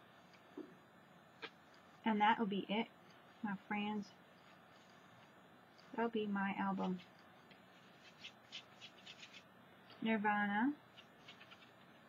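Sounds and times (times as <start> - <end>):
hand rustling over card: 6.8 - 10.0, 11.0 - 12.0.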